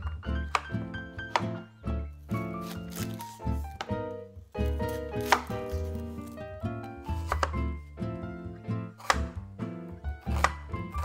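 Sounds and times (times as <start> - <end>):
background music: 0.0 - 11.0
knife chopping onion on wooden board: 0.3 - 1.7, 2.4 - 6.4, 7.1 - 7.8, 8.4 - 11.0.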